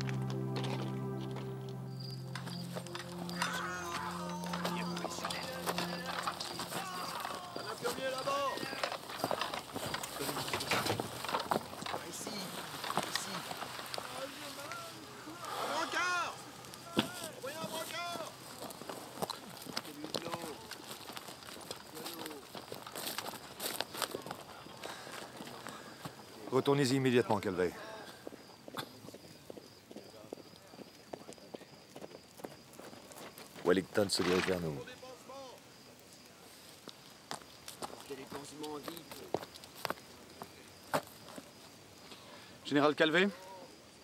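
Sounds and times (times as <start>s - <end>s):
horse hooves clopping: 0.0s - 15.0s, 16.6s - 26.3s, 28.2s - 34.6s
indistinct voices: 0.0s - 18.4s.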